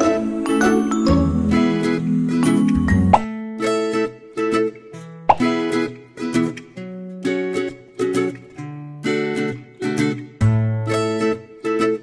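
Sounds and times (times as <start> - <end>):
plucked children's music: 0.0 - 4.1
rising plop sounds: 5.3 - 5.5.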